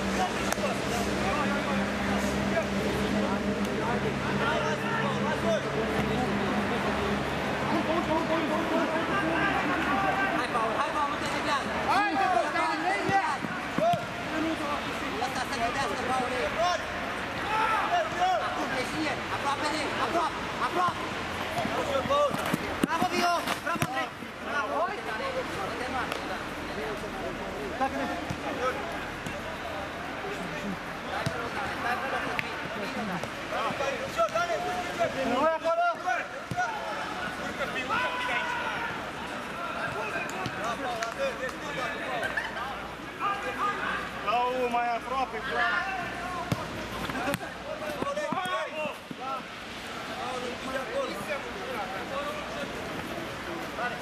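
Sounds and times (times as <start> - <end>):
players shouting: 3.9 - 25.9, 27.7 - 53.1.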